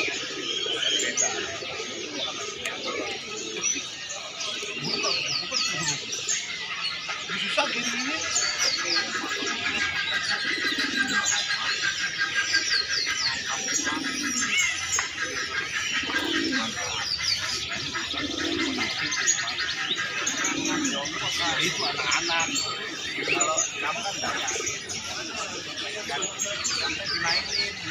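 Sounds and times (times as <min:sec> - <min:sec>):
pigeons cooing: 0:00.0 - 0:27.9
small birds chirping: 0:00.0 - 0:27.9.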